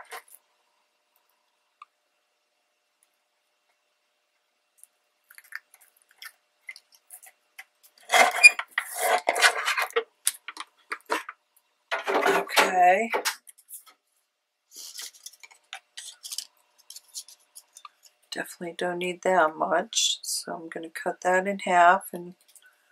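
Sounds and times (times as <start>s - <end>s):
plastic knocks and scrapes: 8.0s - 13.4s.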